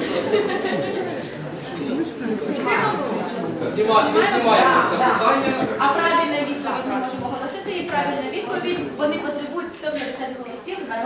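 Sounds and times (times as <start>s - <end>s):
young people chattering: 0.0s - 11.0s.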